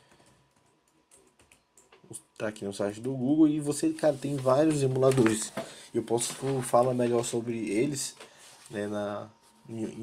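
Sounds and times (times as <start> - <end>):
faint keyboard typing: 0.0 - 8.3.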